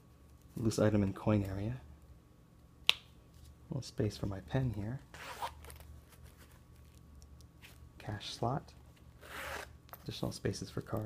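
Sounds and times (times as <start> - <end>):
metal zipper: 5.1 - 5.8, 9.2 - 9.7
faint wallet handling noise: 5.2 - 11.0.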